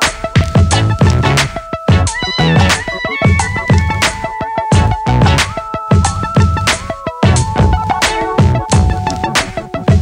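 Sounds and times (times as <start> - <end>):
heavy low drum beat: 0.0 - 10.0
high sliding lead melody: 0.0 - 10.0.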